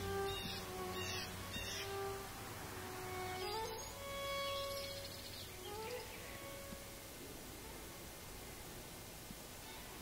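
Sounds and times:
violin holding long notes: 0.0 - 8.7.

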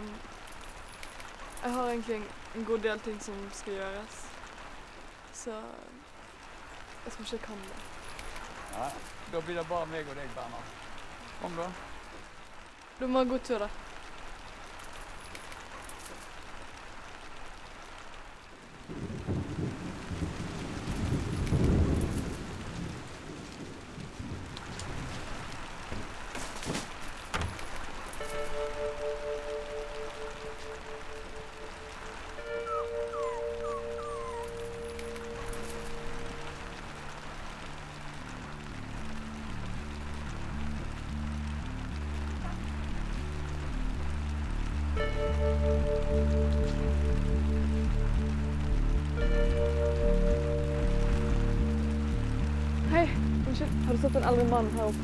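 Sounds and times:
steady rain: 0.0 - 55.0
low rumble of thunder: 18.8 - 26.2
music with long held tones: 28.2 - 55.0.

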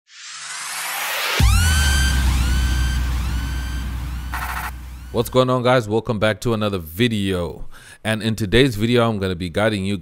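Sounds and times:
synth tone swooping upward: 0.1 - 5.4
deep sub-bass boom: 1.4 - 5.4.

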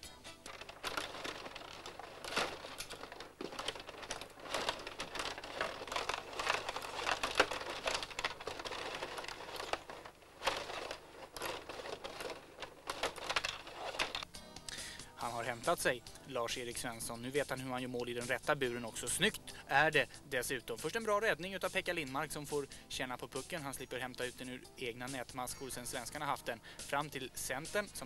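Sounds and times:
table hockey clattering: 0.0 - 14.3.

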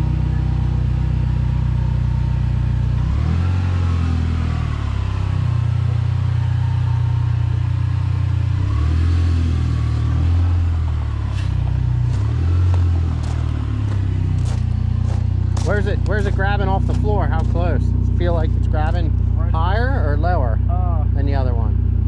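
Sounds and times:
car engine at low revs: 0.0 - 22.0.

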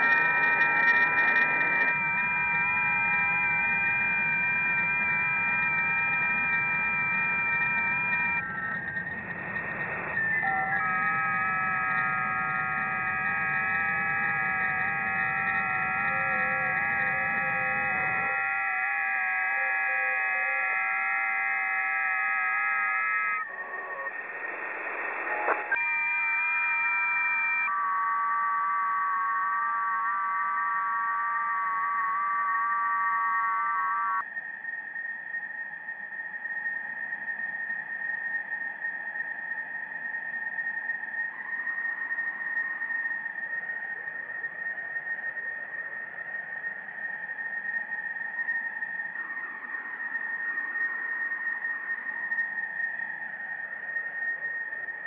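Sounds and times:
electric guitar drone: 0.0 - 34.2.

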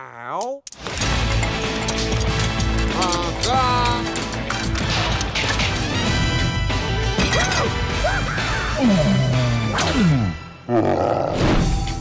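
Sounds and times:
film trailer music: 0.7 - 12.0.

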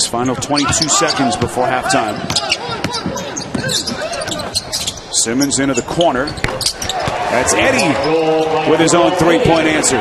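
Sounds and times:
shoe squeaks: 0.6 - 7.1.

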